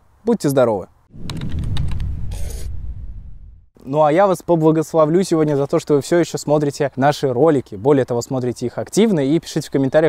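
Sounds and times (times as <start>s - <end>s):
low rumble: 1.1s - 3.7s.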